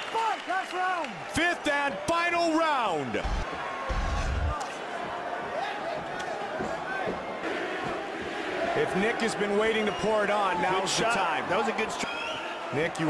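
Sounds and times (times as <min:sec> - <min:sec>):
crowd cheering: 0:00.0 - 0:13.0.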